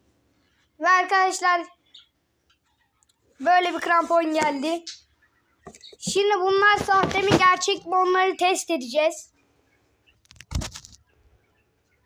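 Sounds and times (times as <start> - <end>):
rustling thump: 6.0 - 7.7.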